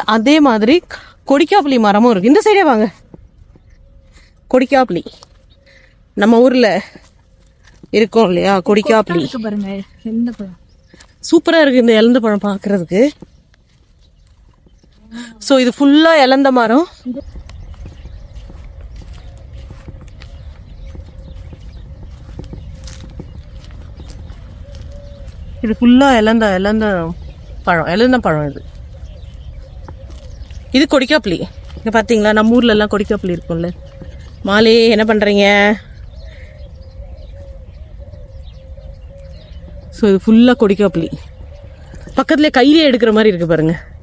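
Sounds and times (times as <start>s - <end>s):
wind rumble on microphone: 12.9s - 44.0s
dove cooing: 17.2s - 44.0s.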